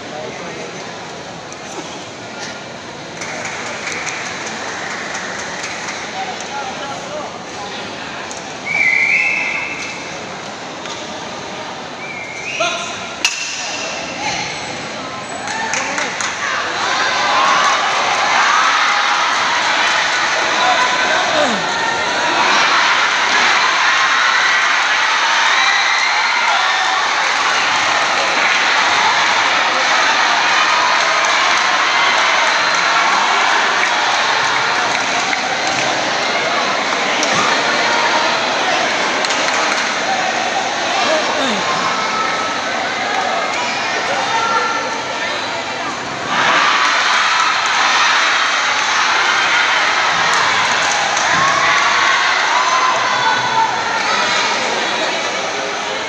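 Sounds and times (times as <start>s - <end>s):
crowd shouting and cheering: 8.2s - 56.0s.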